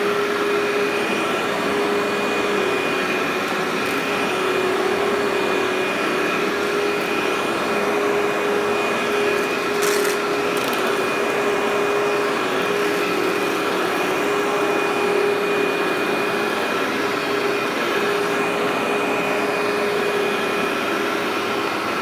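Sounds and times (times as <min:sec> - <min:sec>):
upright vacuum cleaner running: 0:00.0 - 0:22.0.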